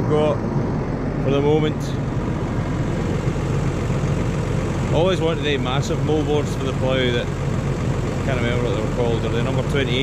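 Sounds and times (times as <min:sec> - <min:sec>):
tractor diesel engine humming: 0:00.0 - 0:10.0.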